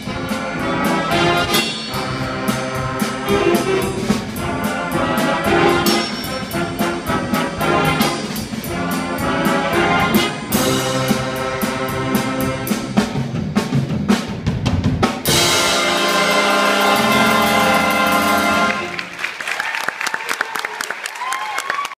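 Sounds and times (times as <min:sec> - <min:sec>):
jazz big band horns: 0:00.0 - 0:19.4
audience applauding: 0:17.4 - 0:22.0.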